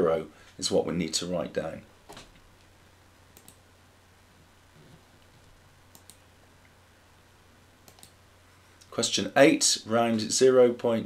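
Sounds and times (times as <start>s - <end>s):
low steady hum: 0.0s - 11.0s
computer mouse clicks: 3.3s - 3.6s, 4.8s - 6.2s, 7.8s - 8.2s.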